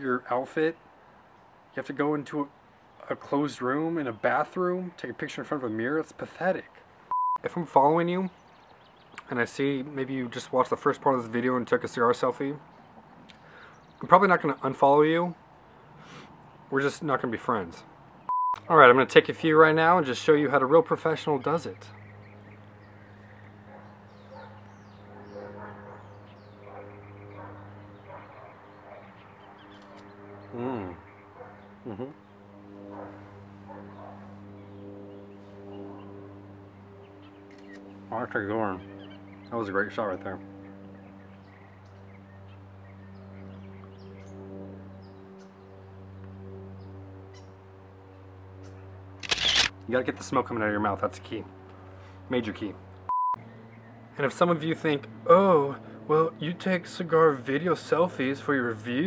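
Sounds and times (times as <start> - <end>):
steady low hum: 1.0 - 59.0.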